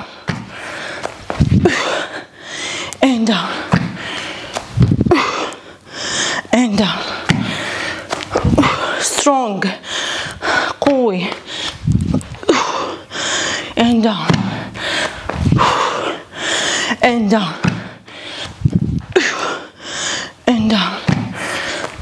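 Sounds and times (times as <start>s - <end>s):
woman grunting: 5.0s - 5.6s.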